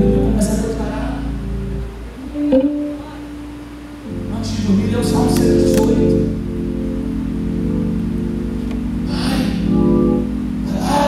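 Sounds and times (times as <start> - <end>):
organ holding sustained chord: 0.0 - 11.0.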